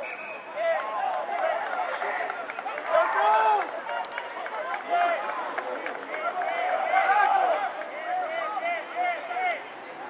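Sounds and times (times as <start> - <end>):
voices shouting and calling out: 0.0 - 10.0.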